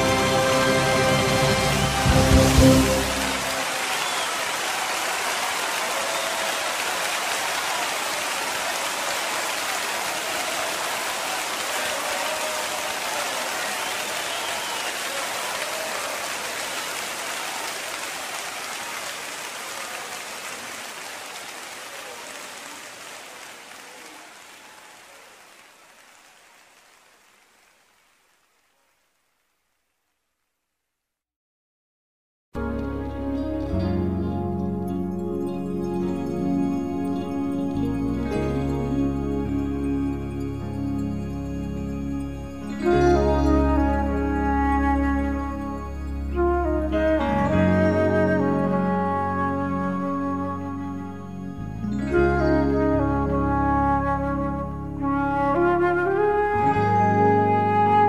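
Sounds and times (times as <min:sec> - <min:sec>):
loud band chord: 0:00.0 - 0:03.8
congregation applauding: 0:00.0 - 0:29.1.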